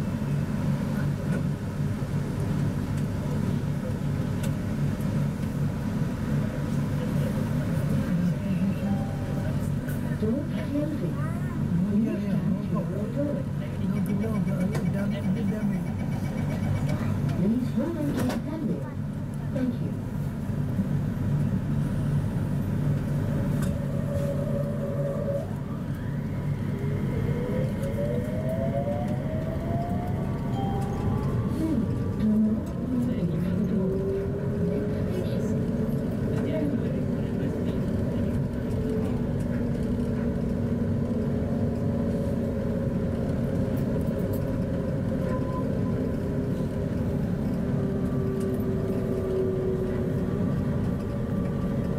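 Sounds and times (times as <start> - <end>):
passengers talking indistinctly: 0.0 - 51.9.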